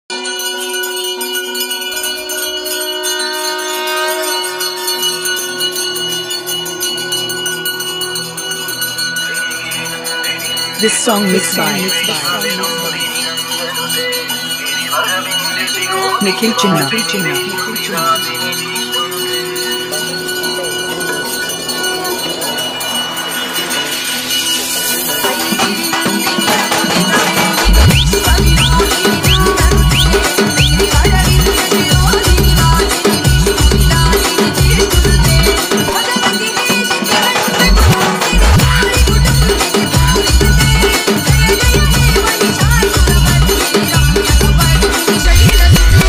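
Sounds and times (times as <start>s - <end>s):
bells ringing: 0.1s - 46.0s
devotional music: 0.1s - 46.0s
low pulsing beat: 27.6s - 32.8s, 44.4s - 46.0s.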